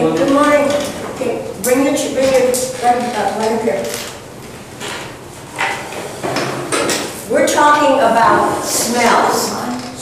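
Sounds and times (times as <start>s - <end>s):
person speaking: 0.0s - 4.2s, 7.2s - 10.0s.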